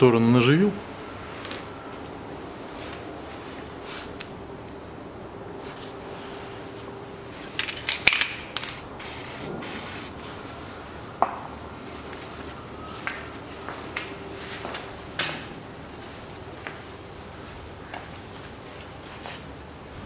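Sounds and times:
short spray hiss: 0:08.6 - 0:10.2.

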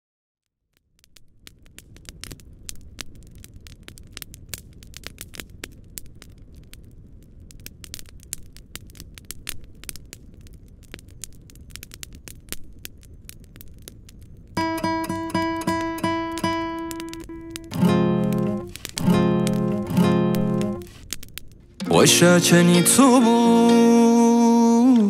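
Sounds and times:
campfire crackling and popping: 0:00.7 - 0:25.0.

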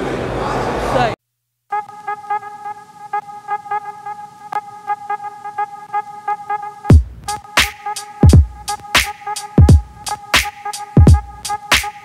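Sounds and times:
electronic music with steady beat: 0:01.7 - 0:12.0.

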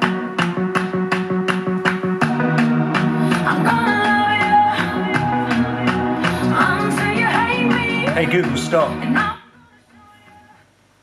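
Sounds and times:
pop song from smart speaker: 0:00.0 - 0:10.8.

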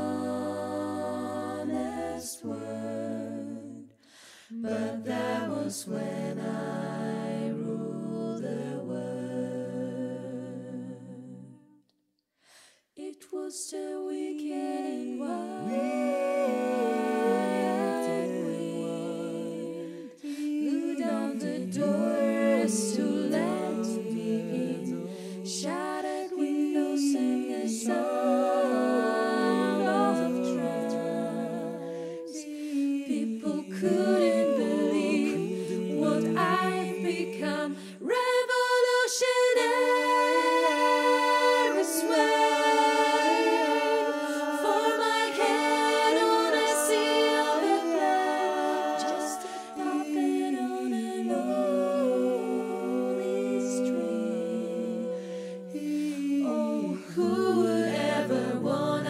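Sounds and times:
vocal group holding a chord: 0:00.0 - 0:11.7, 0:13.0 - 0:59.0
singer's intake of breath: 0:04.0 - 0:04.6, 0:12.4 - 0:12.9, 0:37.7 - 0:38.0, 0:49.4 - 0:49.7, 0:55.2 - 0:55.7.

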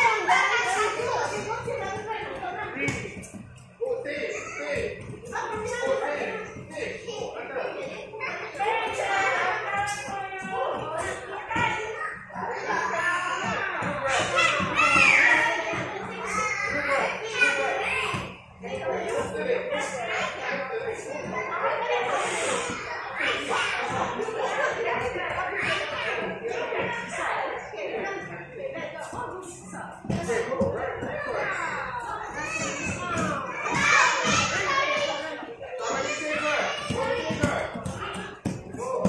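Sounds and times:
children shouting and chattering: 0:00.0 - 0:39.0
young children talking: 0:31.2 - 0:39.0.

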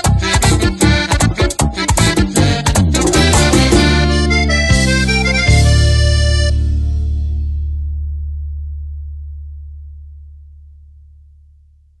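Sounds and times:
low bass note ringing: 0:02.5 - 0:11.8.

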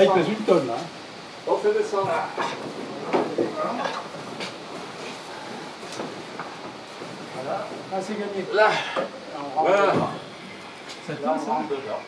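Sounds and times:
wooden knocks and creaks: 0:02.0 - 0:08.4, 0:09.8 - 0:10.3.

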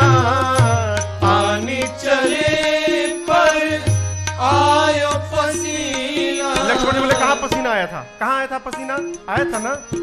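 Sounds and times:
tabla-like drum strokes: 0:00.0 - 0:08.0.

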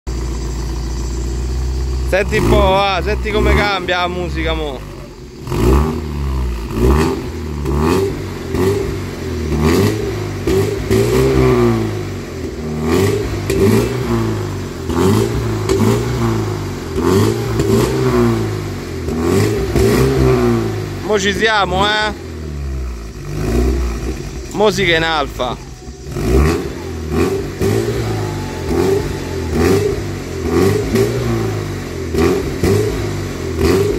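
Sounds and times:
car engine idling: 0:00.0 - 0:33.9.

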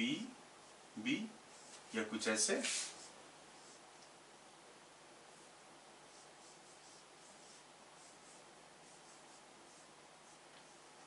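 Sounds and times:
cloth wiping whiteboard: 0:01.5 - 0:03.8, 0:06.1 - 0:11.0
marker writing on whiteboard: 0:06.1 - 0:11.0.

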